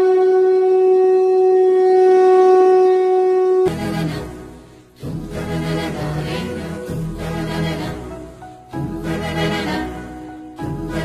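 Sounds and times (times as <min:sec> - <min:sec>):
conch shell blown: 0:00.0 - 0:03.8.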